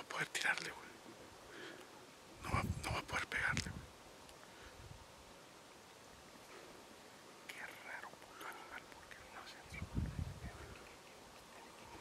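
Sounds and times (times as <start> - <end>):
man whispering: 0.0 - 1.0, 2.4 - 3.8, 7.4 - 12.0.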